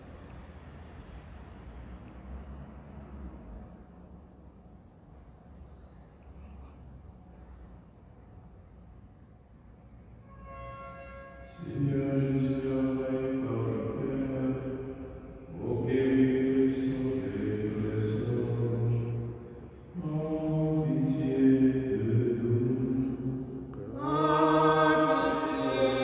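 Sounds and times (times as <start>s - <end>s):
man chanting unaccompanied: 11.5s - 26.0s.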